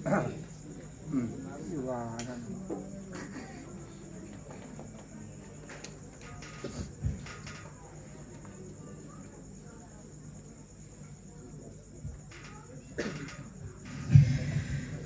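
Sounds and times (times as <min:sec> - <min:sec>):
electrical hum and whine: 0:13.5 - 0:15.0.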